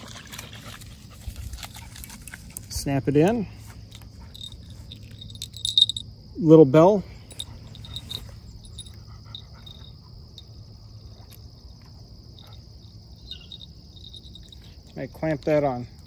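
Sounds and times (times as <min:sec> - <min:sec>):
insects chirring: 0:00.0 - 0:16.0
small bell tinkles and clicks: 0:04.4 - 0:06.0.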